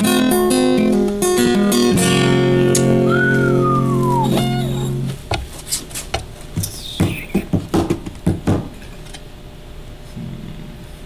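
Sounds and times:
acoustic guitar chord ringing: 0:00.0 - 0:05.2
whistled note gliding downward: 0:03.1 - 0:04.7.

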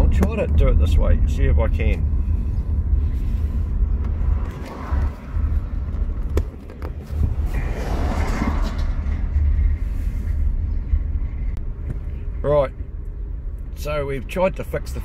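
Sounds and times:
car engine and tyres rumbling: 0:00.0 - 0:15.0.

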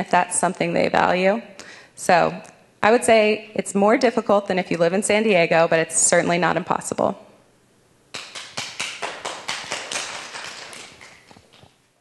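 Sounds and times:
audience applauding: 0:08.2 - 0:11.6.

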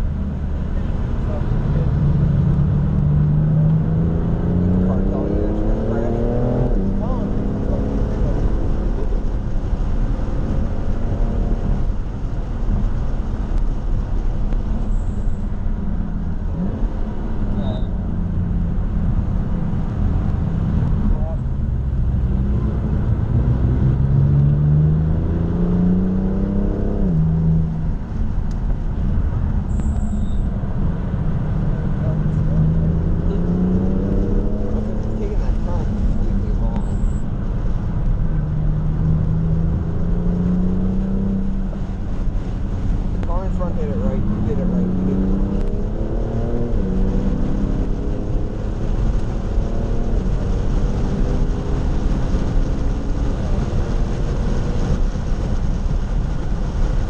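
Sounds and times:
car engine revving: 0:00.0 - 0:57.0
road and tyre rumble: 0:00.0 - 0:57.0.

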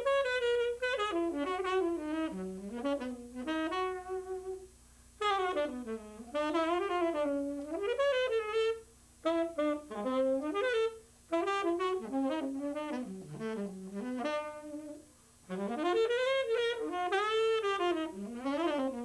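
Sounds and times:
saxophone playing jazz: 0:00.0 - 0:19.0.

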